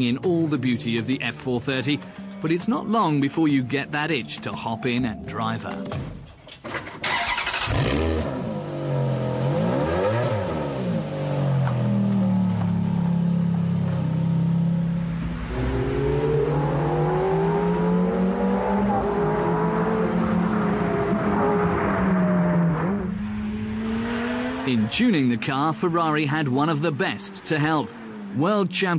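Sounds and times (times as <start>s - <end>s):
car engine revving hard: 7.1s - 12.7s, 14.5s - 28.4s.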